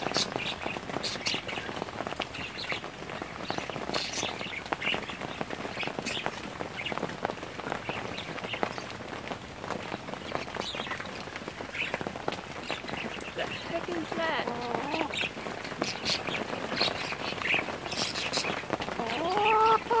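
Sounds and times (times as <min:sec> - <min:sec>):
raindrops ticking: 0:00.0 - 0:20.0
steady rain: 0:00.0 - 0:20.0.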